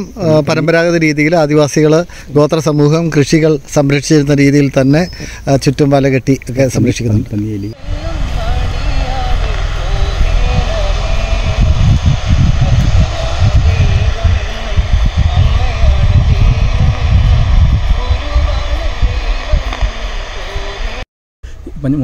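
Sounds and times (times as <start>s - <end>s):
distorted radio broadcast with static: 7.8s - 21.0s.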